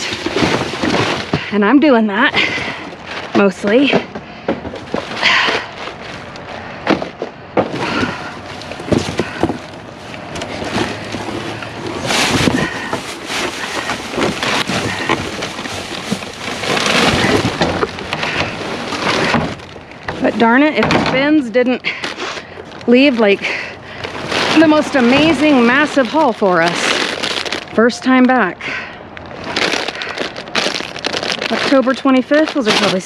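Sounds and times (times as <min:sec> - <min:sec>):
plastic and cardboard rustling: 0:00.0 - 0:33.0.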